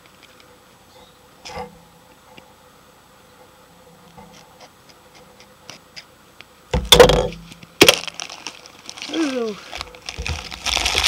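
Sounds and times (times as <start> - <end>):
sharp plastic crack: 6.8 - 11.0
plastic crackling and crinkling: 6.9 - 11.0.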